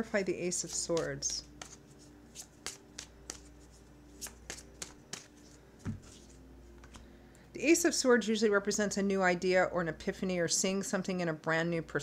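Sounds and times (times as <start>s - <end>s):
tarot cards shuffling: 0.5s - 7.1s
sharp card snaps: 2.4s - 3.5s.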